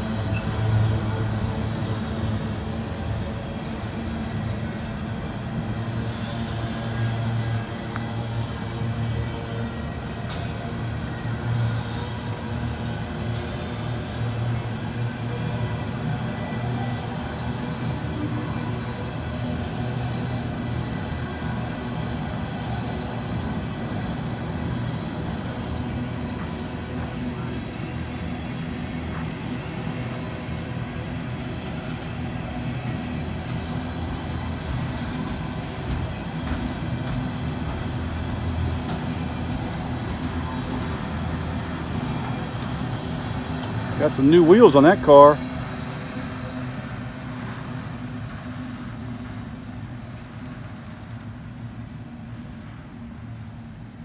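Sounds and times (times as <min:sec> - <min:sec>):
freight train wheels rumbling on rail: 0:00.0 - 0:54.0.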